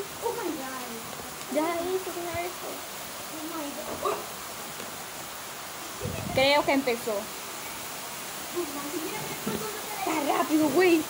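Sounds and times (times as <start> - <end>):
heavy rain hissing: 0.0 - 11.0.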